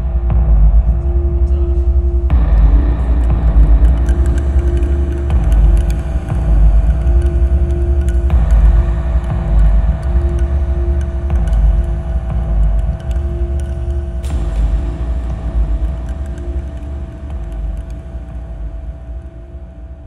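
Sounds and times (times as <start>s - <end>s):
deep rumbling drone: 0.0s - 20.0s.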